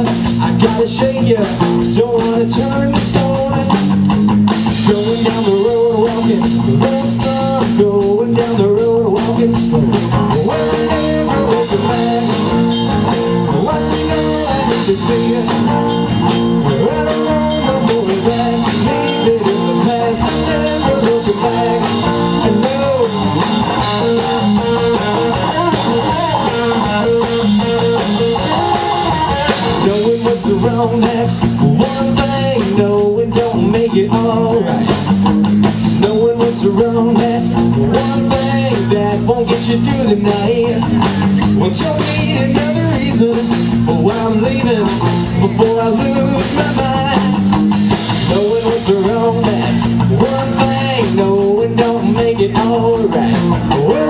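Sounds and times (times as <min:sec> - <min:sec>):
bass guitar: 0:00.0 - 0:54.0
drum kit: 0:00.0 - 0:54.0
electric guitar lead lines: 0:00.0 - 0:54.0.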